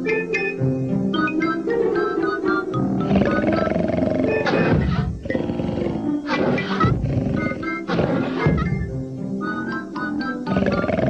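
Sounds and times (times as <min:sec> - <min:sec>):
light music with mallet notes: 0:00.0 - 0:06.2, 0:06.8 - 0:11.0
cartoon dragon growls: 0:03.0 - 0:08.5, 0:10.4 - 0:11.0.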